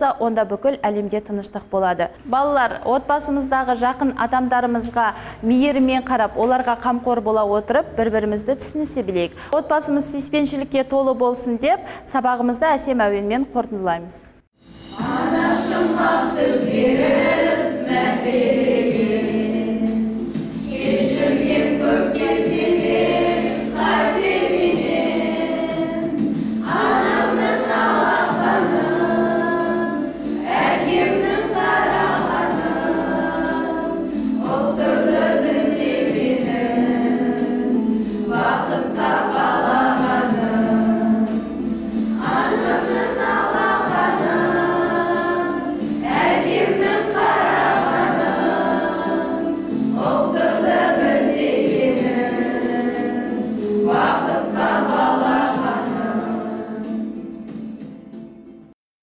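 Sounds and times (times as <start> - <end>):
choir singing: 14.9 - 57.3.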